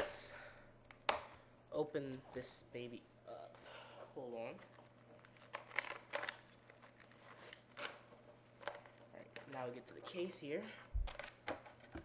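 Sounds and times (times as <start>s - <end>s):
packaging clicks and crackles: 4.6s - 8.0s.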